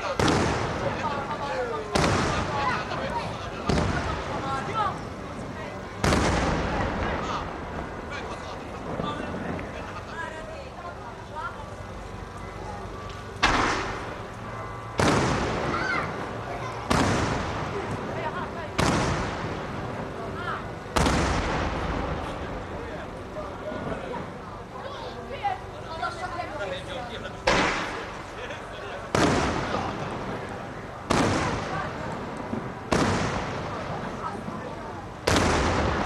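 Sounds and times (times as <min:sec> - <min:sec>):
firework bang: 0:00.0 - 0:01.0, 0:01.9 - 0:02.8, 0:03.6 - 0:04.7, 0:06.0 - 0:07.3, 0:13.4 - 0:14.2, 0:15.0 - 0:16.1, 0:16.8 - 0:18.1, 0:18.8 - 0:20.0, 0:20.9 - 0:22.6, 0:27.5 - 0:28.2, 0:29.1 - 0:30.4, 0:31.1 - 0:34.6, 0:35.2 - 0:36.0
firework shell boom: 0:13.4 - 0:14.1, 0:15.0 - 0:15.7, 0:27.5 - 0:28.0
rumbling echo: 0:13.4 - 0:23.6, 0:29.1 - 0:36.0.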